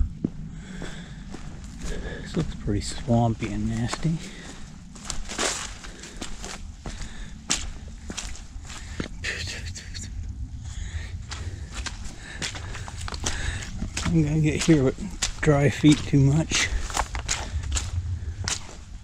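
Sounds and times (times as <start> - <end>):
low rumble: 0.0 - 19.0
footsteps on muddy trail: 0.1 - 9.6, 10.8 - 19.0.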